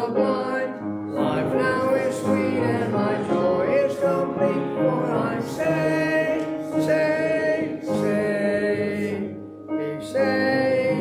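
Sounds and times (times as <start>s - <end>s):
congregation singing a hymn: 0.0s - 11.0s
instrumental accompaniment: 0.0s - 11.0s.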